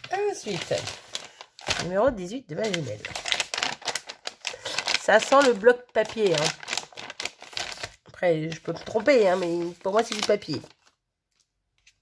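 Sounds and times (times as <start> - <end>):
paper wrapping crinkling: 0.0 - 1.9, 2.6 - 12.0.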